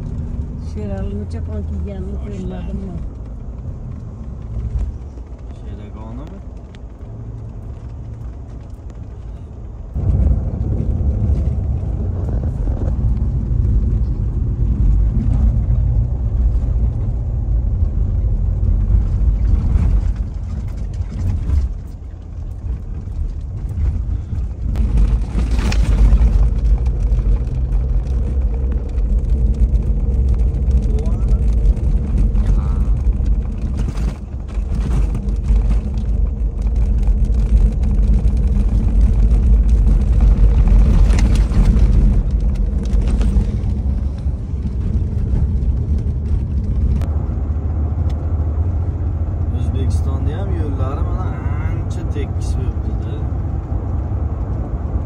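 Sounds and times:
car cabin road rumble: 0:00.0 - 0:55.0.

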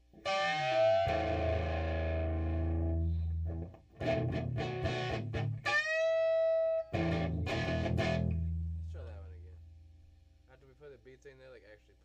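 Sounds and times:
distorted electric guitar: 0:00.0 - 0:08.7.

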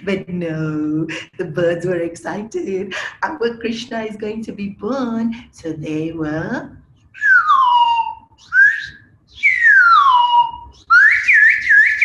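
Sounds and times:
whistled birdsong imitation: 0:07.2 - 0:12.0.

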